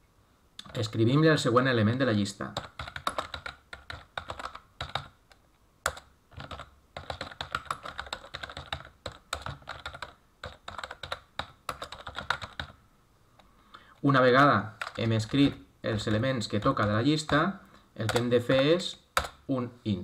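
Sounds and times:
computer keyboard typing: 0.6 - 1.0, 2.5 - 12.8, 14.4 - 19.4.

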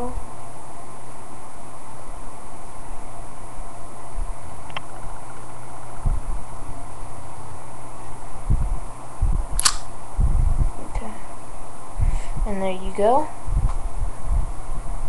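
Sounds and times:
microphone hiss and hum: 0.0 - 15.0
sharp click: 9.6 - 9.9.

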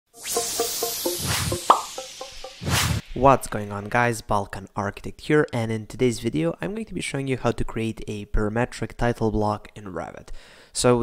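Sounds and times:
brief rising note: 0.1 - 4.0
electronic logo jingle: 0.1 - 4.1
short plopping notes: 0.2 - 3.8.

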